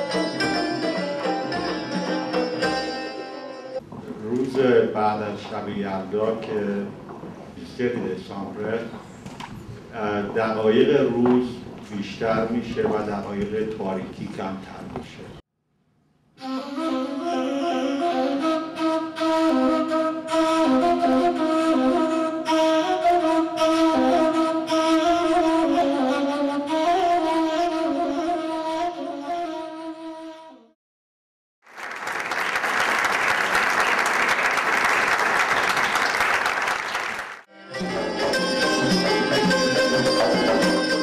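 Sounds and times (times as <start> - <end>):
reed flute melody: 16.4 - 30.8, 37.5 - 41.0
audience applauding: 31.7 - 37.5.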